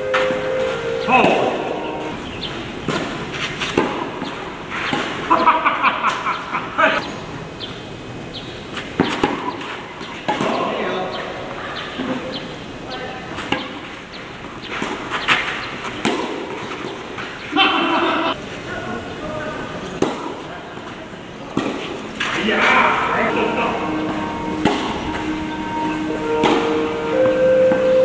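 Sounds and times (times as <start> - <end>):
voices: 0.0 - 28.0
tennis ball struck by rackets: 1.2 - 5.3, 8.8 - 10.7, 13.4 - 13.9, 14.7 - 17.4, 20.0 - 20.4, 21.5 - 22.4, 23.4 - 27.8.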